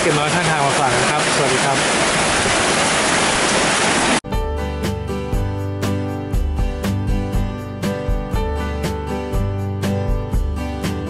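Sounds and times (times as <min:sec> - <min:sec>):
heavy rain falling: 0:00.0 - 0:04.2.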